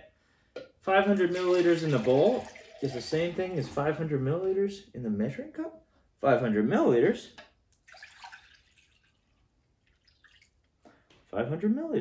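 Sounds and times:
liquid pouring into glass bowl: 1.0s - 4.0s, 7.8s - 10.6s.

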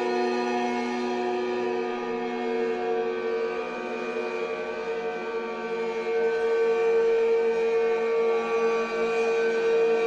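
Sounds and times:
guitar ambient drone: 0.0s - 10.0s.

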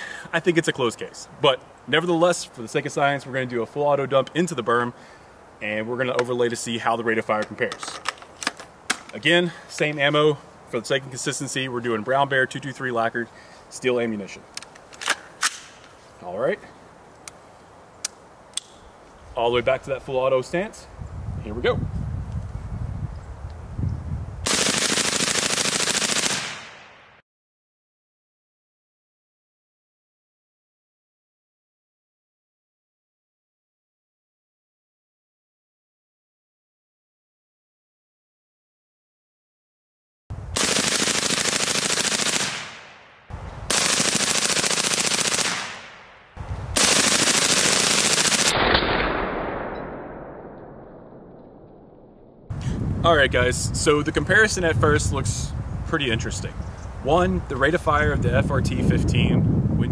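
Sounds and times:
suppressed full-auto rifle burst: 24.5s - 26.9s, 40.6s - 43.0s, 43.7s - 46.2s, 46.8s - 50.6s
gunshot echo: 48.4s - 52.1s.

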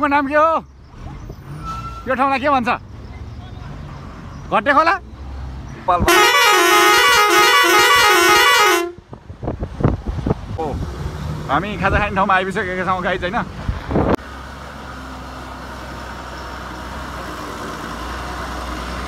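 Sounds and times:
musical horn warbling tune: 6.1s - 9.0s.

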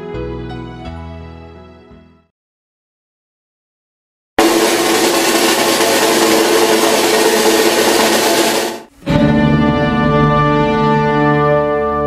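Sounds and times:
loud steady rushing noise: 4.4s - 8.9s.

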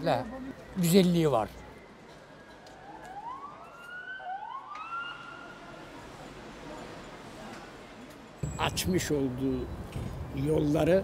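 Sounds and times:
hum of town square: 0.0s - 11.0s
siren wailing: 0.3s - 5.5s.

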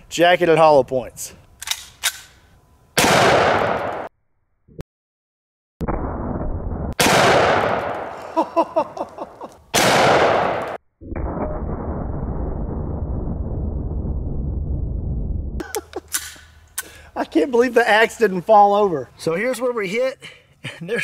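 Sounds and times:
loud pistol shots: 3.0s - 4.1s, 7.0s - 8.2s, 9.7s - 10.8s.

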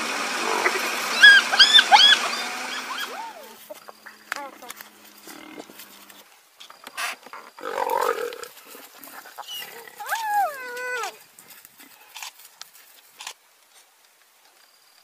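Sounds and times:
hyenas yelping: 0.4s - 3.8s, 7.6s - 11.2s.

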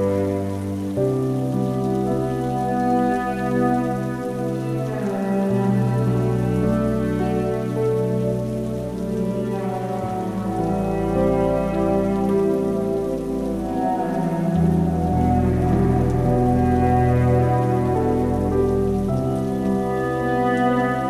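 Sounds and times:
cello and piano music: 0.0s - 21.0s
falling rain: 0.0s - 21.0s.

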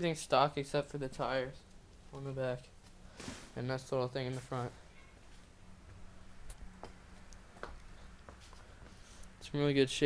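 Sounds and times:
faint steady hum: 0.0s - 10.0s
soft clicks and taps: 5.9s - 9.4s.

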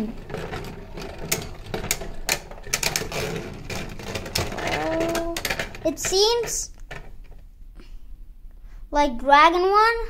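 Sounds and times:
rapid irregular clicks: 0.0s - 7.4s
spinning tops whirring: 0.0s - 7.4s.

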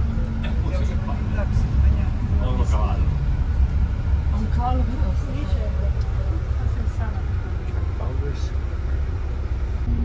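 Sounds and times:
faint voices talking: 0.0s - 9.3s
bus engine low rumble: 0.0s - 10.0s.

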